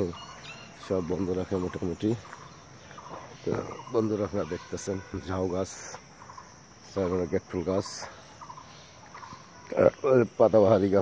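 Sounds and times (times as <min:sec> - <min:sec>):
man talking: 0:00.0 - 0:00.2, 0:00.8 - 0:02.4, 0:03.2 - 0:06.0, 0:06.8 - 0:08.2, 0:09.7 - 0:11.0
high insect chirring: 0:00.0 - 0:11.0.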